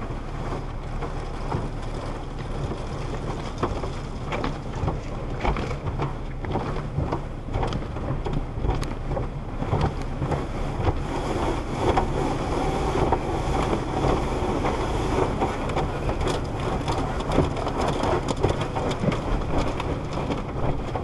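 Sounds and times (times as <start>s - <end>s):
low rumble: 0.0s - 21.0s
water spraying on a car: 0.0s - 21.0s.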